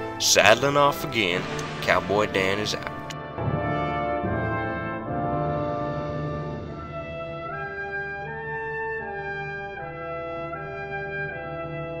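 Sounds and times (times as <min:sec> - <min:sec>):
slow brass melody: 0:00.0 - 0:12.0.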